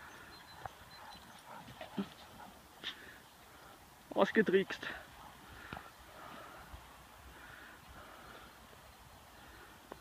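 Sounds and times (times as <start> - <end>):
distant dog barks: 0.6 - 2.7.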